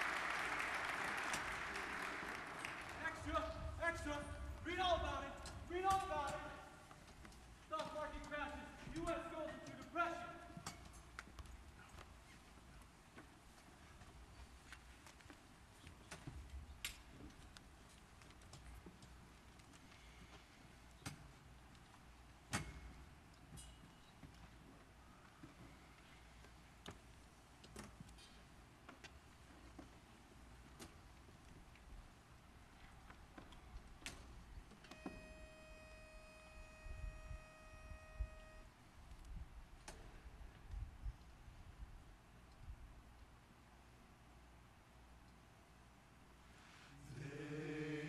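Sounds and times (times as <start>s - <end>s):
footsteps on stage risers: 0.1s - 35.2s
men's voices: 47.0s - 48.0s.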